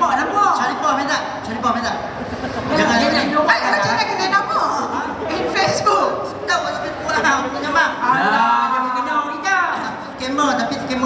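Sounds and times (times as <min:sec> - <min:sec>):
people talking over microphones: 0:00.0 - 0:11.0.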